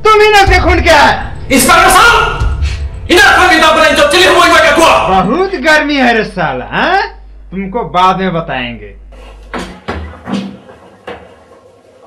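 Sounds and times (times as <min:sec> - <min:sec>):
knocks and clatters: 0:09.2 - 0:12.0.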